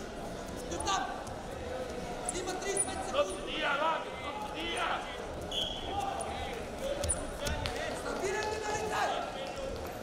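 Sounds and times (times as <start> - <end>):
voices in large arena: 0.0 - 10.0.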